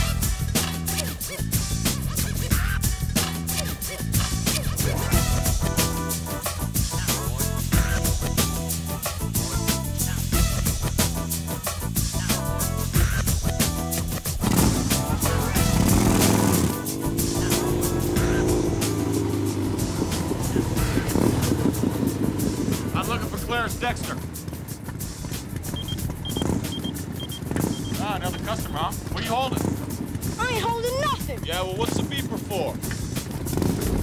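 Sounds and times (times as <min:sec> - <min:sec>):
background music: 0:00.0 - 0:34.0
motorcycle engine revving: 0:00.0 - 0:34.0
street noise: 0:00.0 - 0:34.0
high beeps: 0:25.8 - 0:28.4.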